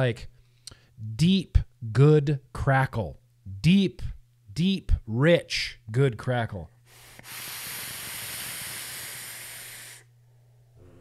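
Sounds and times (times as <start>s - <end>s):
faint breath: 6.8s - 10.6s
vape airflow hiss with crackle: 7.0s - 10.1s.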